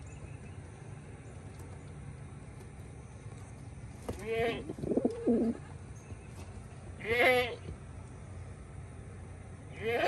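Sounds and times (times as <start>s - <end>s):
farm animal bleating: 4.1s - 5.8s, 7.0s - 7.7s, 9.7s - 10.0s.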